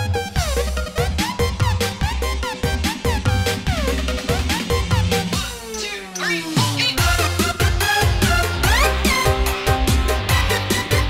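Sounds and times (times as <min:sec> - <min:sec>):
keyboard: 0:00.0 - 0:11.0
drum beat: 0:00.4 - 0:11.0.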